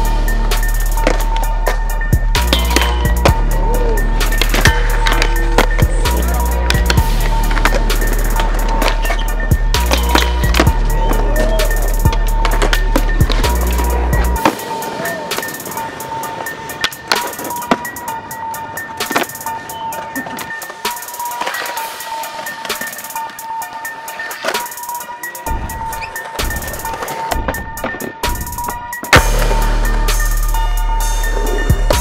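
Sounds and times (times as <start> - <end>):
music with heavy bass: 0.0 - 16.2, 24.7 - 32.0
skateboard wheels rolling on concrete: 0.0 - 32.0
skateboards clacking and landing: 0.0 - 32.0.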